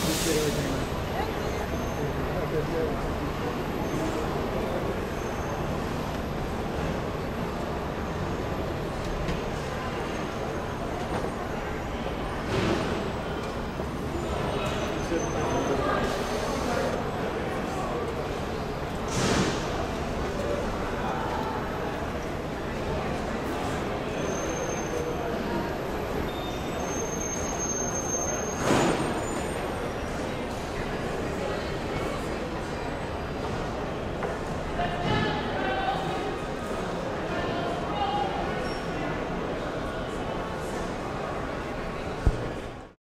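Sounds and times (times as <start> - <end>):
airport terminal rumble and hiss: 0.0 - 43.0.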